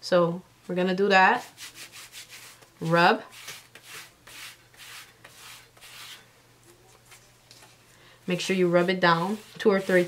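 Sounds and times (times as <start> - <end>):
palm brushing wax strip on leg: 8.5 - 10.0.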